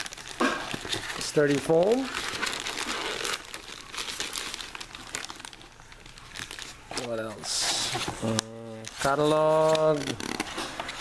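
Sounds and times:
plastic bag crinkling: 0.0s - 11.0s
person humming: 8.2s - 8.9s.

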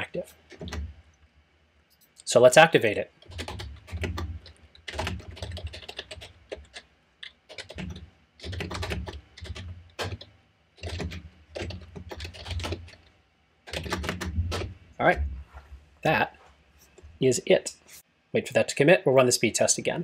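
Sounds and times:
computer keyboard typing: 0.5s - 1.0s, 3.2s - 13.1s, 13.7s - 14.8s.

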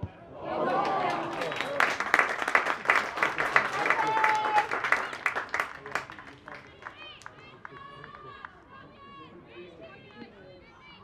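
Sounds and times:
players shouting: 3.4s - 5.2s.

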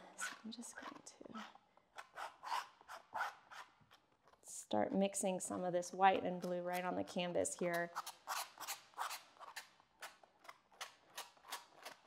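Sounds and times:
palette knife scraping paint: 0.0s - 4.4s, 7.6s - 12.0s.

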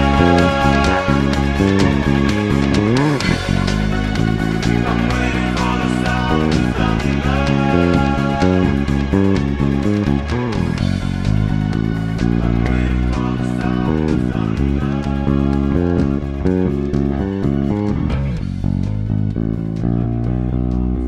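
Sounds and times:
fingered electric bass line: 0.0s - 21.0s
new wave band recording: 0.0s - 21.0s.

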